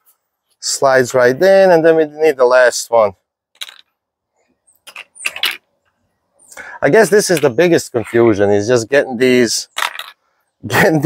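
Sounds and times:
plastic pieces clicking and clattering: 0:03.6 - 0:03.9, 0:09.7 - 0:10.2.

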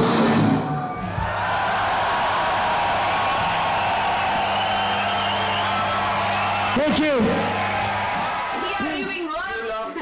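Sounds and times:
crowd cheering and shouting: 0:00.3 - 0:10.0.

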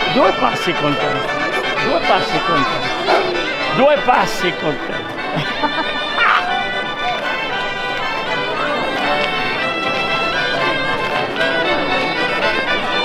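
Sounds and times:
folk dance music: 0:00.0 - 0:13.0
people talking and calling out: 0:00.0 - 0:13.0.

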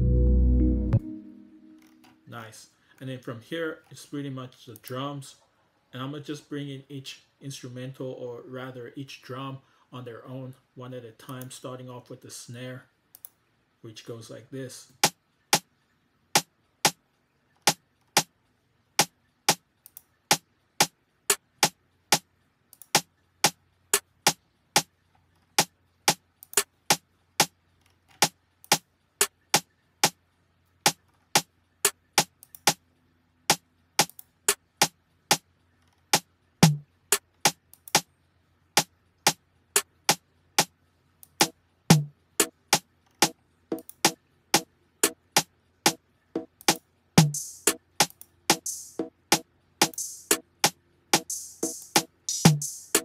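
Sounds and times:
conga hits: 0:36.6 - 0:36.8, 0:41.4 - 0:42.5, 0:46.4 - 0:53.0
snare drum pattern: 0:36.6 - 0:36.8, 0:41.4 - 0:53.0.

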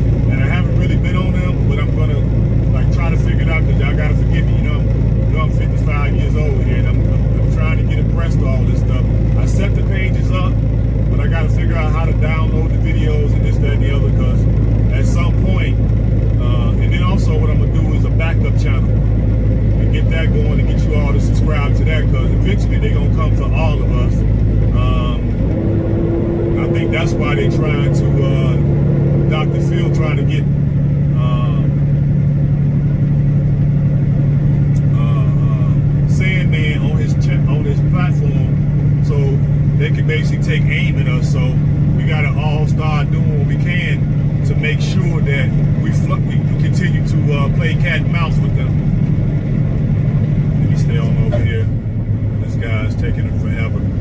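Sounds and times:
diesel truck engine droning: 0:00.0 - 0:54.0.

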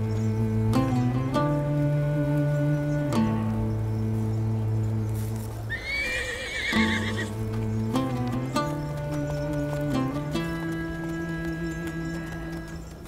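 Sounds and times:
orchestral music with held chords: 0:00.0 - 0:13.0
horse whinnying: 0:05.7 - 0:07.4.

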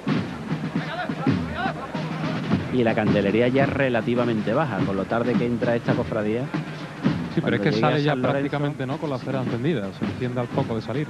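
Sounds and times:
procession band with drums: 0:00.0 - 0:11.0
voices: 0:00.0 - 0:11.0.

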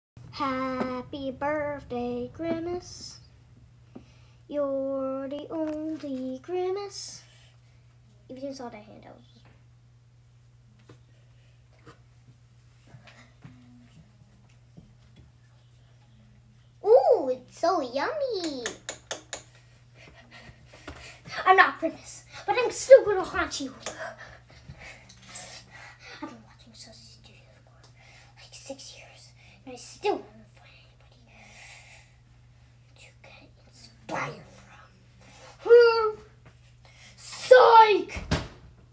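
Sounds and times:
steady low hum: 0:00.2 - 0:37.8
child whispering: 0:30.4 - 0:31.6.

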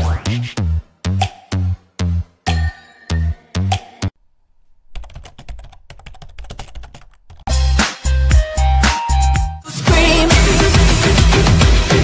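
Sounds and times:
electronic music with heavy bass: 0:07.5 - 0:12.0.

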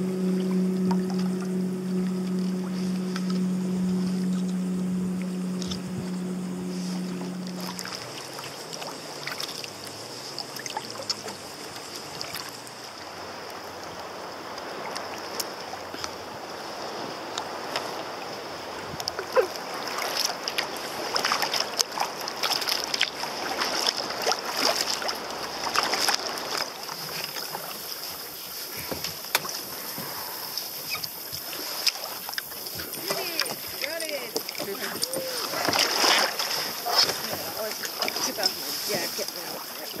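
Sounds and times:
water lapping against kayak: 0:00.0 - 0:40.0
faint voices: 0:33.0 - 0:36.0.

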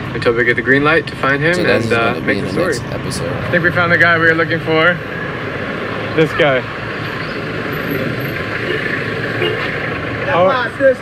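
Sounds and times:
street noise: 0:01.6 - 0:04.0.

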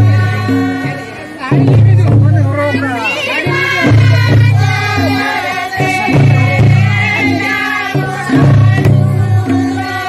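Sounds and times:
women singing in chorus: 0:00.0 - 0:10.0.

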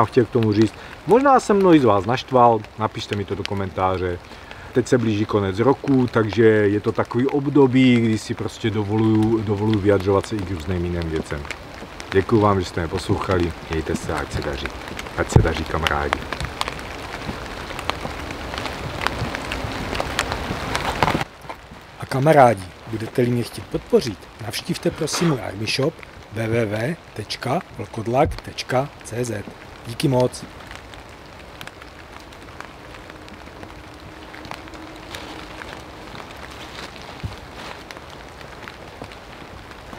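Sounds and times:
light ticks on dry leaves: 0:00.0 - 0:39.9
steady outdoor hiss: 0:00.0 - 0:39.9.

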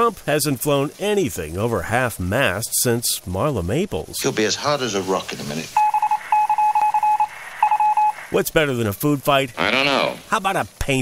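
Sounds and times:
short electronic beeps: 0:05.8 - 0:08.2.

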